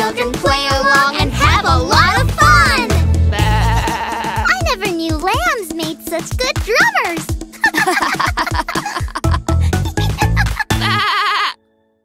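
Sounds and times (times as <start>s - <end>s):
children's music: 0.0s - 11.2s
child's voice: 0.2s - 3.0s, 4.4s - 7.3s
cartoon lamb bleating: 3.3s - 4.6s, 10.7s - 11.6s.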